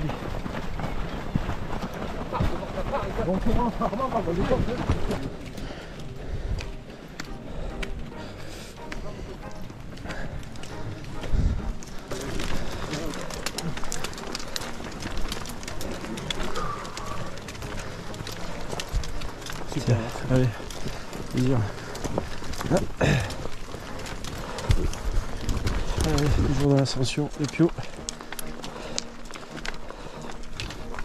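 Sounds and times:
footsteps of crowd hiking: 0:00.0 - 0:31.0
trekking poles clicking on stones: 0:00.0 - 0:31.0.

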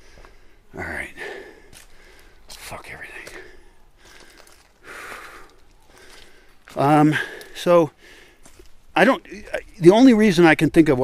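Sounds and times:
man breathing out heavily: 0:00.0 - 0:02.5, 0:03.2 - 0:08.5.

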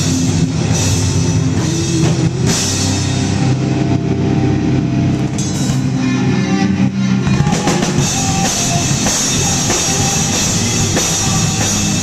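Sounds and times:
drum kit with crashing cymbals: 0:00.0 - 0:04.4, 0:05.0 - 0:12.0
rock band playing: 0:00.0 - 0:12.0.

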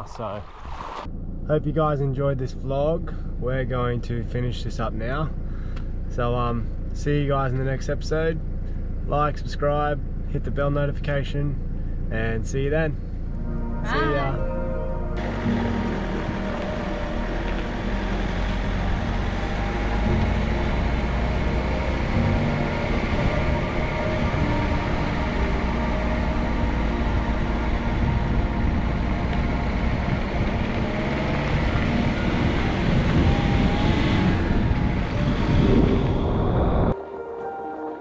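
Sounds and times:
van road and engine noise: 0:00.0 - 0:37.0
wind buffeting microphone: 0:18.2 - 0:37.0.

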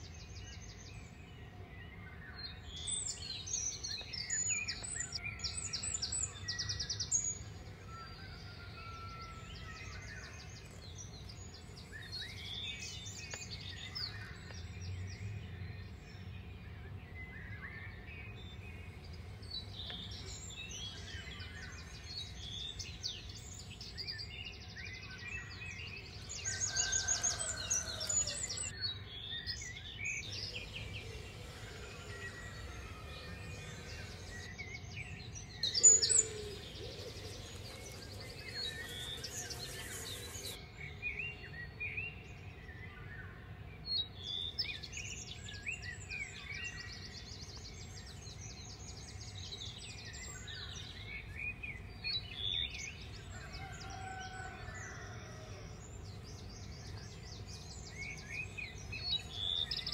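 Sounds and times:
birds chirping and trilling: 0:00.0 - 0:59.9.

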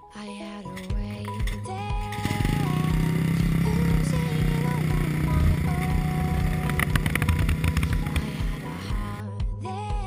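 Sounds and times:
background music: 0:00.0 - 0:10.0
exhaust crackles: 0:00.8 - 0:09.2
dirt bike engine running: 0:00.9 - 0:09.2.

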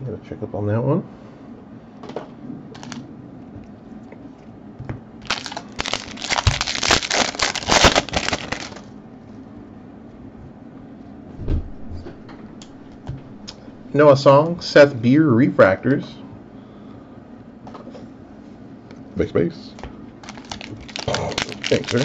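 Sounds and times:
foil wrapper crinkling: 0:02.8 - 0:03.0, 0:05.2 - 0:08.9, 0:20.2 - 0:22.0
soft thump: 0:11.4 - 0:12.2.

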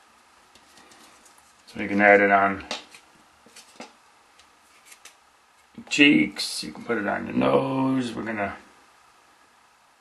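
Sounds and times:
man talking: 0:01.7 - 0:02.8, 0:05.8 - 0:08.7
wooden stick clicking and scraping: 0:02.6 - 0:05.8.

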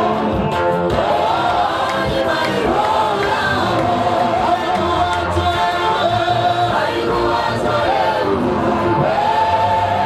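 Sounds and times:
backing singers in harmony: 0:00.0 - 0:10.0
male lead singer: 0:01.9 - 0:10.0.

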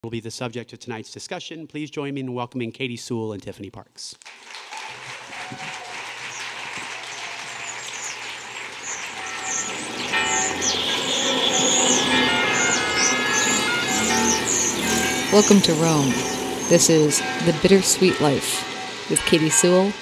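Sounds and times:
audience applauding: 0:04.2 - 0:19.8
recorded theme music: 0:08.5 - 0:20.0.

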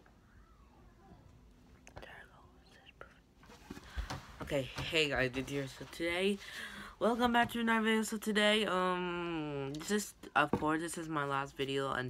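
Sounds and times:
faint whispering: 0:01.8 - 0:03.3.

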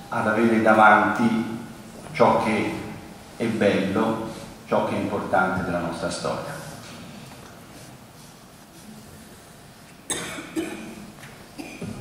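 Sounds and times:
person coughing: 0:10.1 - 0:12.0.

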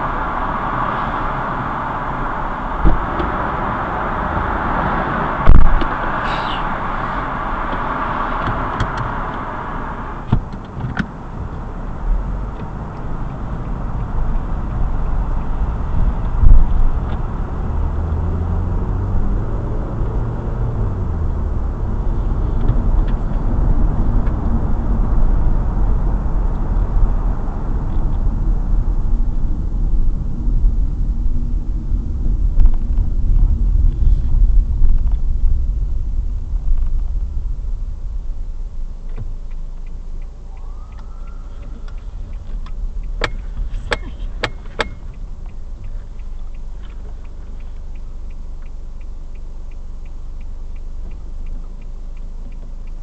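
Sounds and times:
car driving at speed: 0:00.0 - 0:53.0
sharp clicks or knocks: 0:41.0 - 0:45.6.

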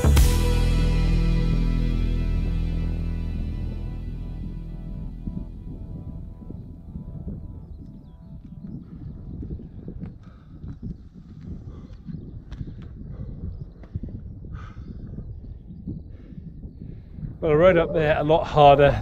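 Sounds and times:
background music: 0:00.0 - 0:09.3
wind rumbling on microphone: 0:03.3 - 0:19.0.

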